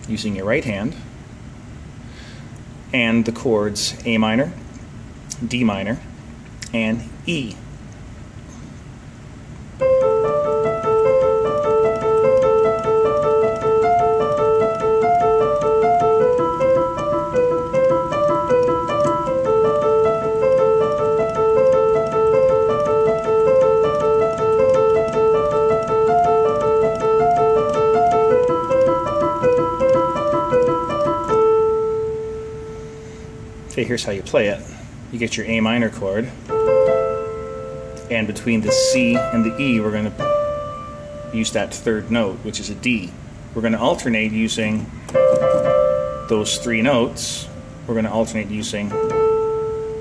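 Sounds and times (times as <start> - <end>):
piano broken chords: 9.6 - 50.0.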